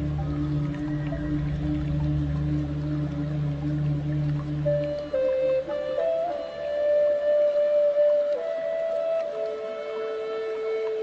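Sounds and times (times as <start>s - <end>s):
ambient meditation music: 0.0s - 11.0s.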